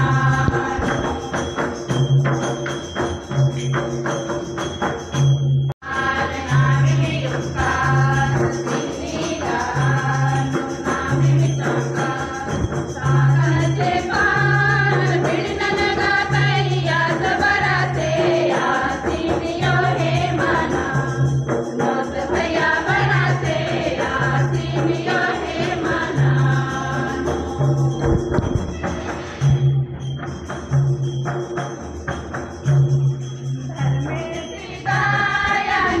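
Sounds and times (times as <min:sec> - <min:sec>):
group of voices singing: 0:00.0 - 0:01.8, 0:05.8 - 0:28.1, 0:34.0 - 0:36.0
rhythmic percussion with jingling: 0:00.0 - 0:36.0.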